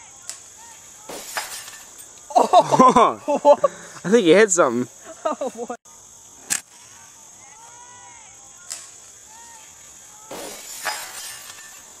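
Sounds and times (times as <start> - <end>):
rough noise: 1.0 - 2.2, 10.3 - 12.0.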